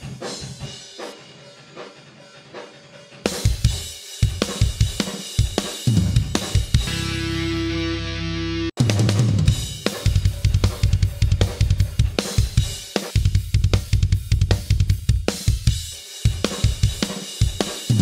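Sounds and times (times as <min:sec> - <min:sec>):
fast metal drumming: 0:00.0 - 0:07.5, 0:08.8 - 0:18.0.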